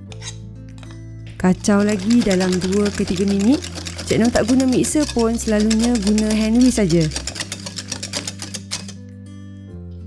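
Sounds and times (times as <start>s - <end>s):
whisk beating batter in glass bowl: 1.4s - 9.0s.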